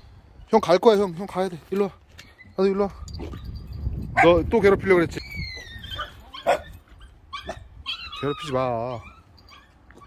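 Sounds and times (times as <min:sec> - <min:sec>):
puppy yelping: 0:05.1 - 0:10.0
puppy barking: 0:05.9 - 0:08.5.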